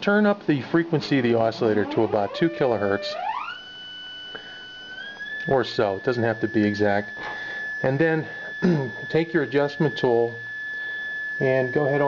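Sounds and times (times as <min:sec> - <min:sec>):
electronic oscillator tone: 0:01.1 - 0:12.0.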